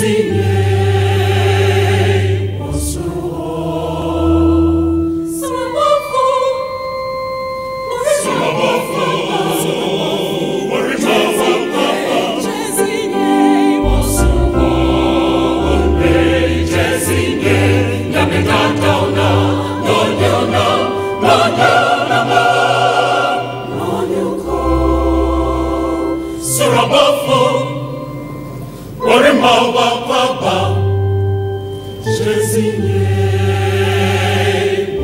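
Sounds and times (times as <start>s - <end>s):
group of voices singing: 0.0s - 6.7s, 7.9s - 28.2s, 29.0s - 31.1s, 32.0s - 35.0s
deep bass line: 13.8s - 16.2s.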